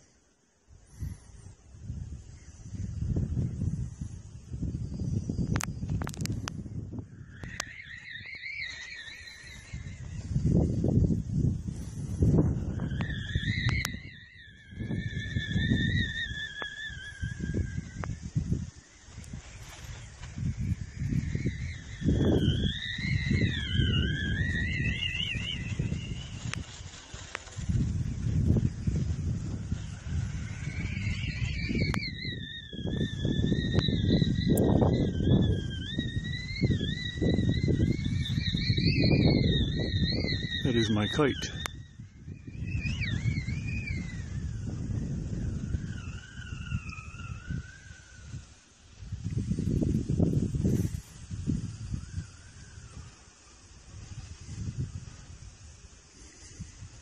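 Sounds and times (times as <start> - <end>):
wind gusting against microphone: 0.0 - 57.0
high wavering whistle-like tone: 0.8 - 57.0.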